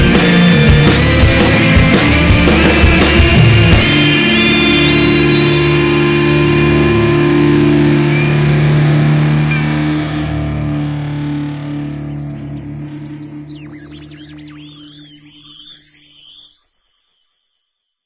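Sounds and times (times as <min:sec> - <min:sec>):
electric guitar chord ringing: 0:00.0 - 0:13.4
high gliding effect tones: 0:00.3 - 0:18.0.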